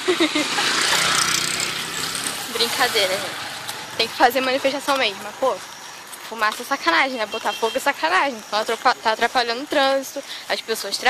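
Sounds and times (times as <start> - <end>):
motor vehicle passing: 0.0 - 10.6.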